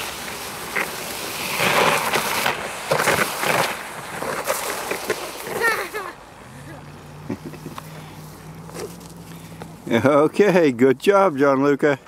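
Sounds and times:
plastic sled sliding on ice: 0.0s - 6.2s, 7.4s - 12.0s.

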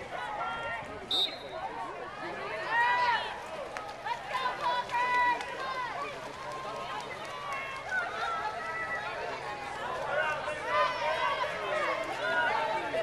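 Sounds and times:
crowd background noise: 0.0s - 13.0s
spectators shouting encouragement: 0.0s - 13.0s.

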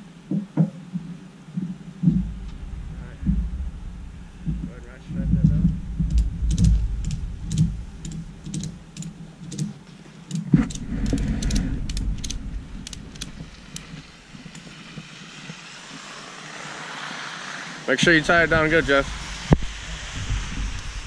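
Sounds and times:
low rumble: 1.6s - 9.6s, 10.5s - 16.2s
loud thump: 2.0s - 7.8s
ratchet strap clicking: 6.1s - 14.8s.

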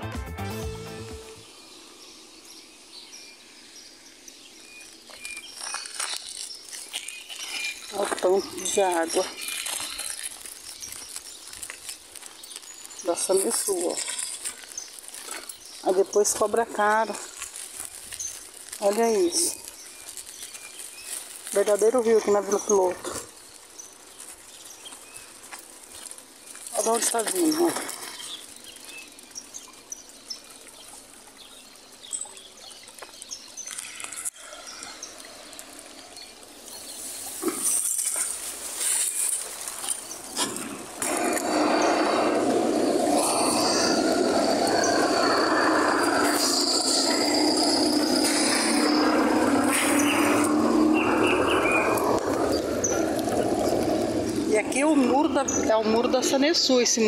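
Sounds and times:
water gushing from a leak: 4.7s - 56.0s.

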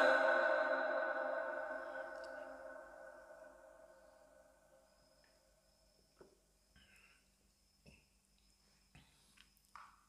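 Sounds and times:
chanting voice echo: 0.0s - 4.6s.

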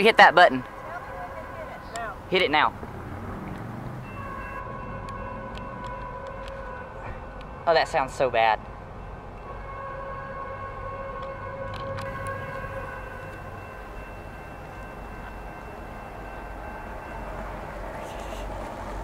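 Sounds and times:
locomotive air horn chord: 9.6s - 14.8s.

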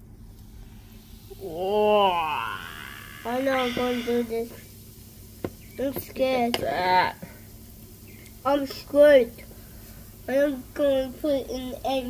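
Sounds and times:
person's wordless vocal calls: 1.3s - 4.5s.

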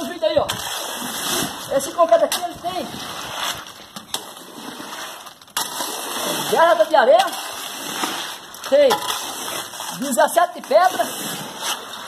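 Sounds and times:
wet concrete stirring: 0.0s - 12.0s.

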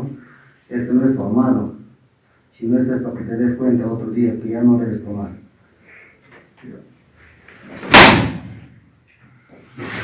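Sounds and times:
whip lash crack: 7.8s - 8.6s.

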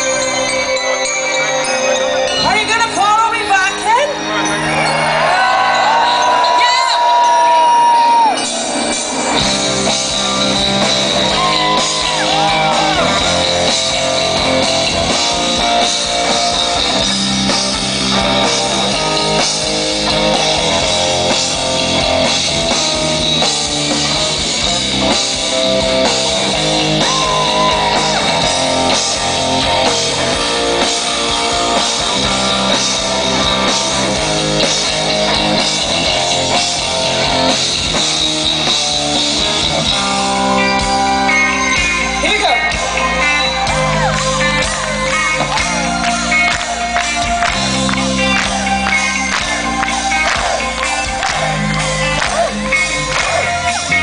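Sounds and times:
distorted electric guitar: 0.0s - 54.0s
drum kit: 5.0s - 54.0s.

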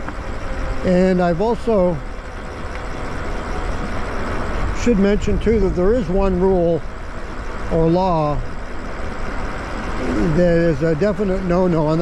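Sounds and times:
tyres rolling on paved road: 0.0s - 12.0s.

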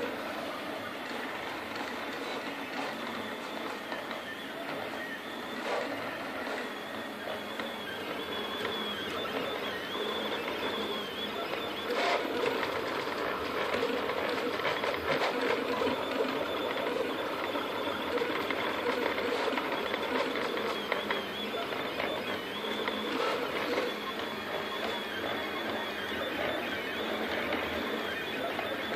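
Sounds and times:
motor and fan whirring: 0.0s - 28.9s
stepper motors whining: 0.0s - 28.9s.

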